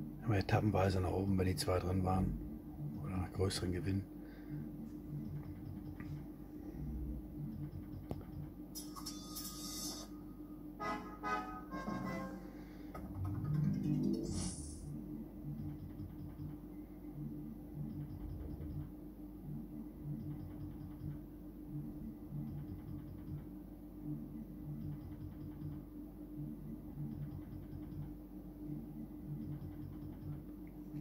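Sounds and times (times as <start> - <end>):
slot machine game melody: 10.8 - 12.6, 13.2 - 14.8.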